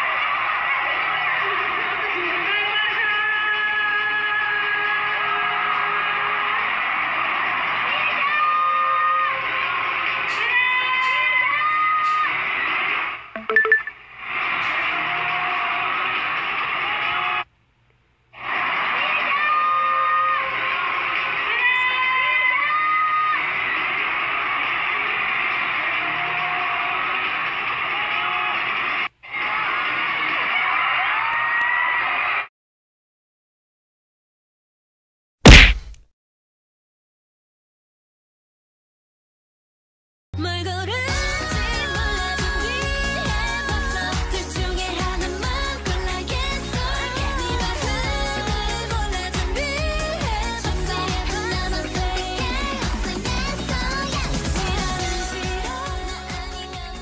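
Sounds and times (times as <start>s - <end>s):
crowd of fans: 0.0s - 17.5s, 18.3s - 32.5s, 41.0s - 57.0s.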